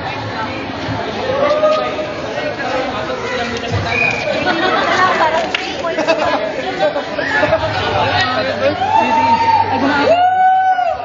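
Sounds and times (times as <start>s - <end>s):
group chatter: 0.0s - 11.0s.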